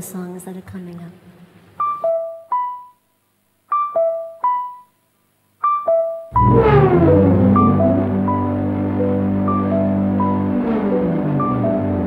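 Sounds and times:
electric piano phrase: 5.6 - 12.0.

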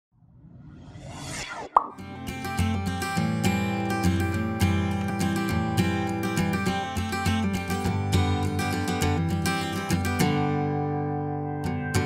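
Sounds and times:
rising rush of noise: 0.2 - 2.3
sharp pop: 1.6 - 2.2.

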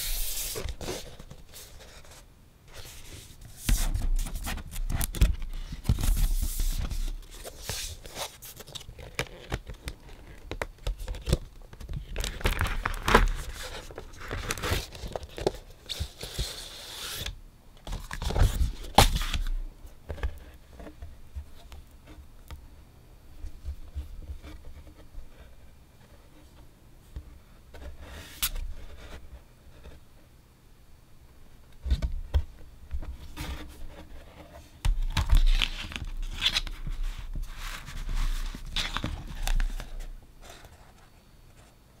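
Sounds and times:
paper rustling and scraping: 0.0 - 17.3, 33.2 - 41.0
vinyl record rustling and knocking: 23.4 - 25.4.

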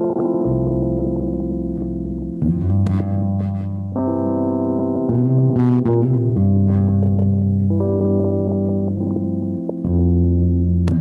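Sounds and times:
bass guitar line: 0.0 - 11.0
held keyboard chords: 0.0 - 11.0.

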